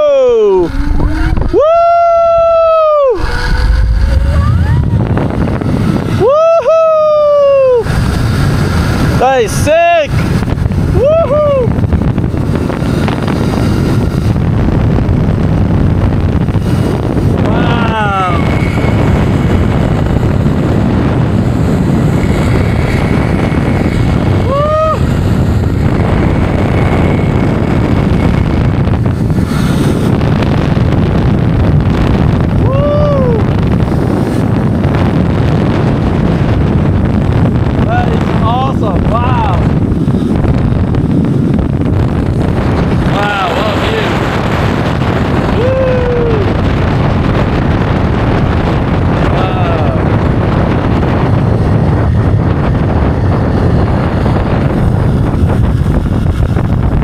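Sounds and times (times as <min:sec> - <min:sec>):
rider whooping: 0:00.0 - 0:08.8, 0:10.8 - 0:12.0, 0:16.7 - 0:28.7, 0:32.5 - 0:34.4, 0:45.3 - 0:46.8
trolley rumbling along cable: 0:00.0 - 0:57.0
wind rushing on microphone: 0:00.0 - 0:57.0.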